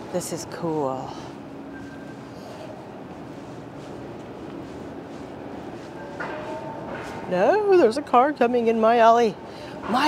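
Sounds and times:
city background noise: 0.0 - 10.0
faint low engine hum: 0.0 - 10.0.

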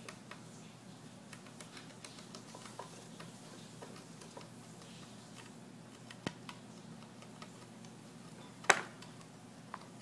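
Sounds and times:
gerbil ticks and scratches: 0.0 - 10.0.

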